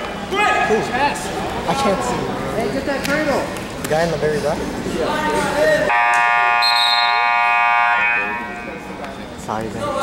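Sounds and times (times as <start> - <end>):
scoreboard buzzer long tone: 5.9 - 8.5.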